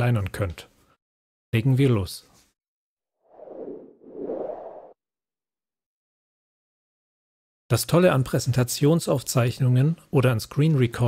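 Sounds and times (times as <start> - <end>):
whoosh sound effects: 3.3 - 5.0.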